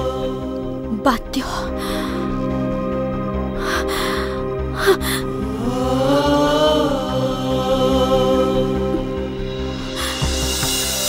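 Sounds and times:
dramatic score with drone and beat: 0.0 - 11.0
person speaking: 0.9 - 2.1
woman gasping: 1.7 - 2.3, 3.6 - 5.4, 10.0 - 10.4.

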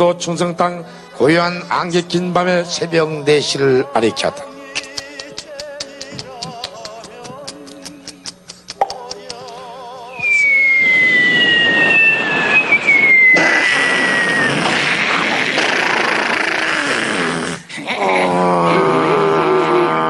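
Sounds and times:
falling whistles: 10.1 - 14.8
wavering tone: 10.1 - 14.9.

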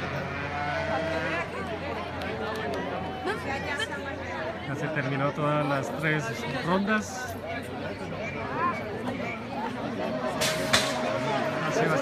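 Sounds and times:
spectator chatter: 0.0 - 12.0.

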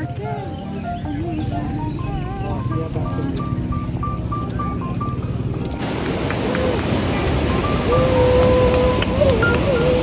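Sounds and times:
stream rushing over rocks: 5.6 - 10.0.

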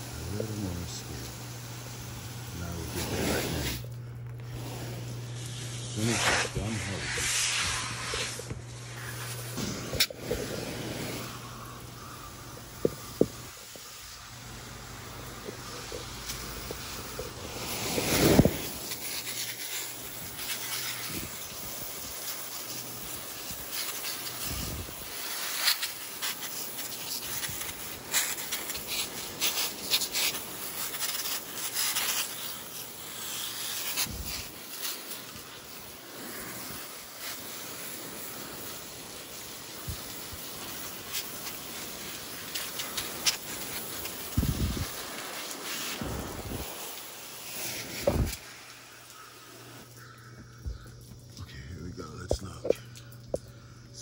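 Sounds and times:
hose nozzle spraying water: 0.0 - 50.1
water spattering on leaves: 0.0 - 51.5
nozzle bumps: 48.0 - 48.4.

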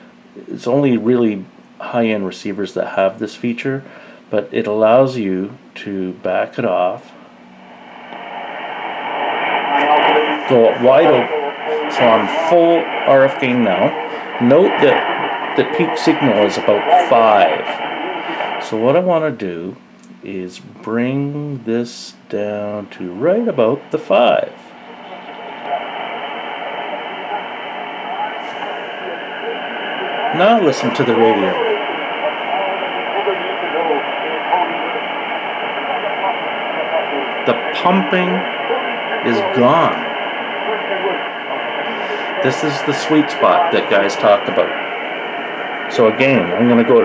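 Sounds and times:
faint radio programme audio: 0.3 - 47.0
radio static: 7.7 - 19.6, 21.2 - 47.0.

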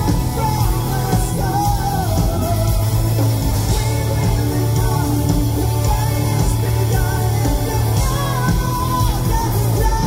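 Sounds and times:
high lead vocal: 0.0 - 10.0
live hard rock band: 0.0 - 10.0.

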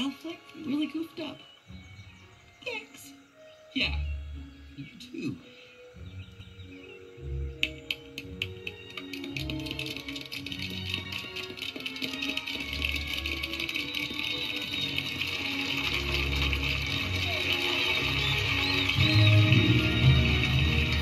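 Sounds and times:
instrumental film music: 0.0 - 21.0.

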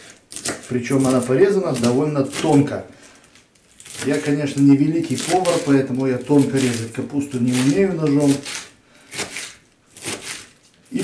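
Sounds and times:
knife slicing cabbage on board: 0.3 - 2.7, 5.0 - 10.6.

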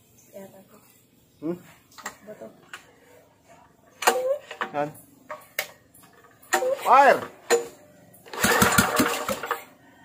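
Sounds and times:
recoil starter cord pulled: 6.5 - 7.7, 8.3 - 9.6.

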